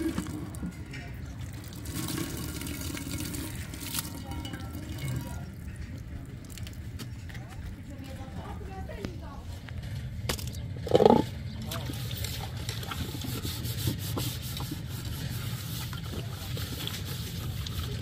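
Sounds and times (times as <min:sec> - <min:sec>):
metal clinks of pots washed: 0:00.0 - 0:06.3.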